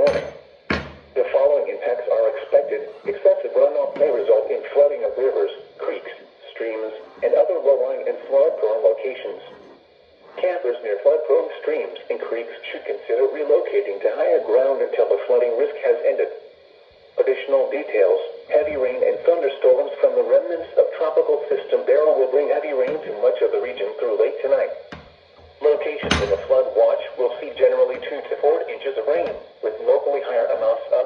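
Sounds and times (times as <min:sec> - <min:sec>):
radio voice through small speaker: 0:00.0 - 0:00.3, 0:01.2 - 0:16.4, 0:17.2 - 0:31.0.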